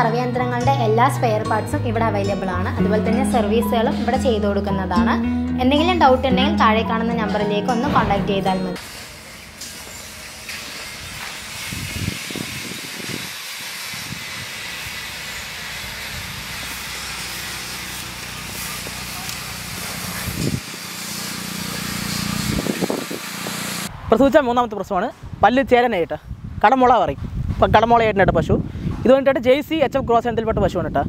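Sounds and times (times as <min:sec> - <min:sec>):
soft low thumps: 0:07.8 - 0:08.6.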